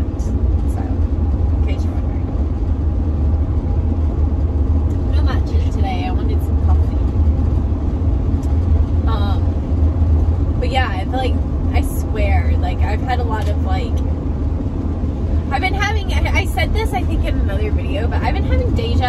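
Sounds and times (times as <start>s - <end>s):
road and engine rumble in van: 0.0s - 19.0s.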